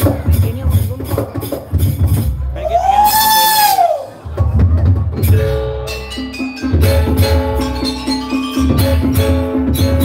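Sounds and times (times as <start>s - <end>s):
gamelan drum strikes: 4.4s - 10.0s.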